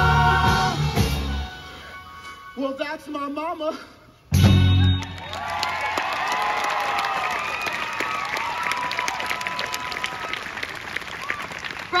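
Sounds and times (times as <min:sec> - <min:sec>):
audience whooping: 0:04.9 - 0:11.8
audience clapping: 0:05.0 - 0:12.0.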